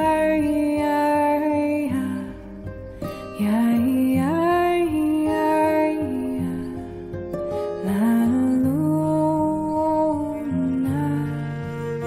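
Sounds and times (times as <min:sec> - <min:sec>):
woman singing long notes: 0:07.8 - 0:12.0.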